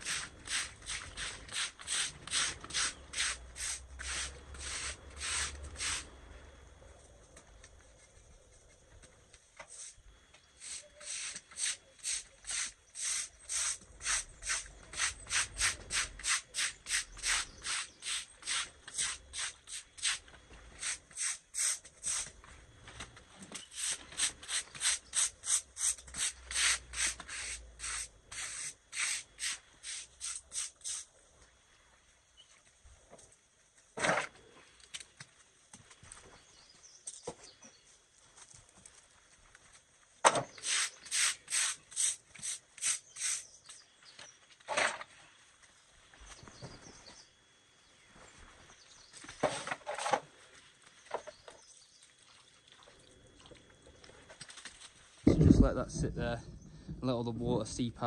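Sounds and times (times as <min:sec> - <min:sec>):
deck brush scrubbing wet stone: 0:00.0 - 0:06.1, 0:10.6 - 0:20.2.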